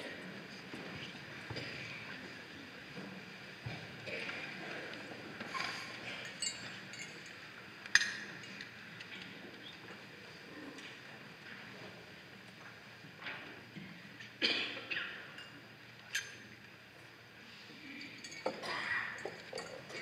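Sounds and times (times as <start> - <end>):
small knocks and clinks: 5.5 - 9.3, 18.0 - 20.0.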